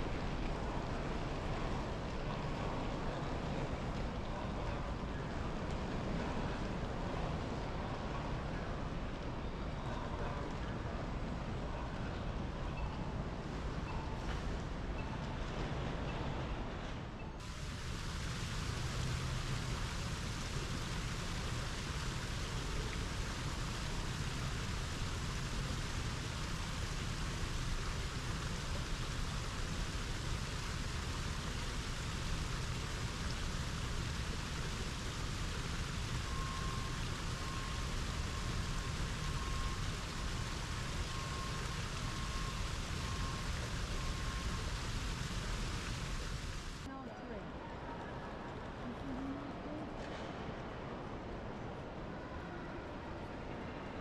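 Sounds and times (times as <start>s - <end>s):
waterfall splashing into a pool: 17.4s - 46.9s.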